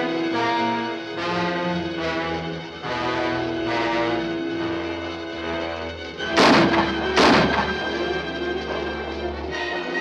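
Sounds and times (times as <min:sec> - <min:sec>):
dramatic orchestral music: 0:00.0 - 0:10.0
loud crashes: 0:06.3 - 0:08.0.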